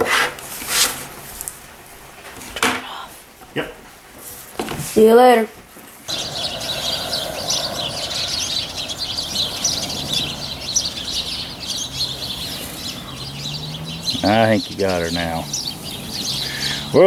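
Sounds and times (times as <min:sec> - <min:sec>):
small birds chirping: 0:06.0 - 0:17.0.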